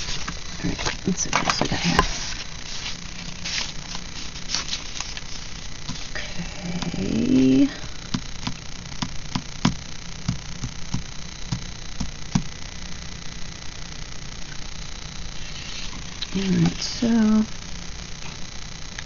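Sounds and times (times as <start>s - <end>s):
woman humming: 6.1s - 8.2s, 16.1s - 17.5s.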